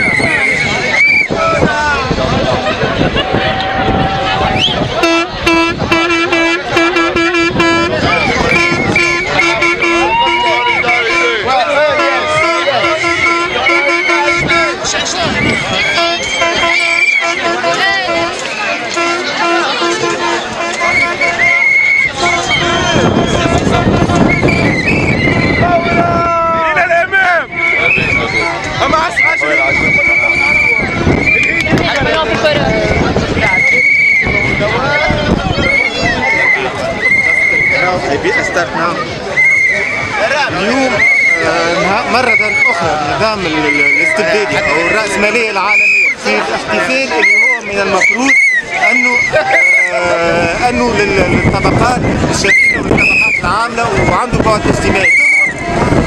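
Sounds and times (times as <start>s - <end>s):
crowd chatter: 0.0s - 56.0s
horn blasts: 3.0s - 38.6s, 39.4s - 56.0s.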